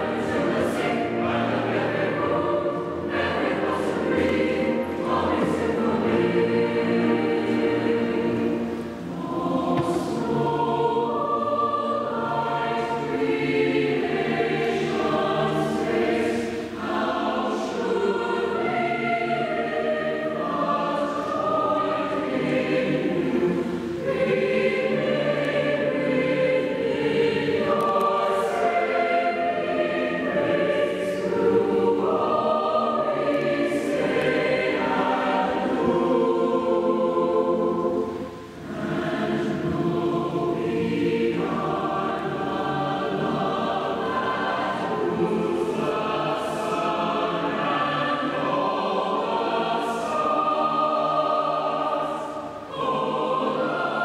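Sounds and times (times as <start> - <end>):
mixed choir singing in a church: 0.0 - 54.0.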